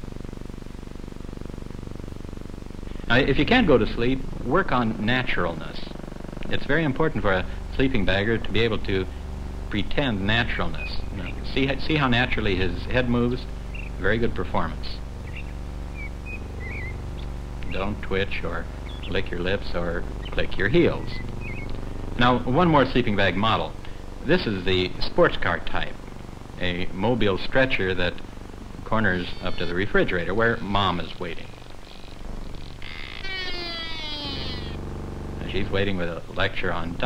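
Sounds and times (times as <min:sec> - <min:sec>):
low hum and hiss: 0:00.0 - 0:37.0
low steady drone: 0:00.0 - 0:37.0
high bird chirps: 0:15.2 - 0:17.3, 0:18.8 - 0:19.2, 0:21.0 - 0:21.8, 0:32.8 - 0:34.8
tyres screeching: 0:31.8 - 0:34.8.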